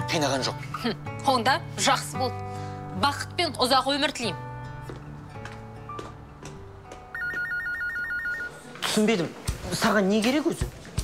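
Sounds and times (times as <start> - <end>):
soft background music: 0.0 - 11.0
electronic telephone ringer trilling: 7.2 - 8.6.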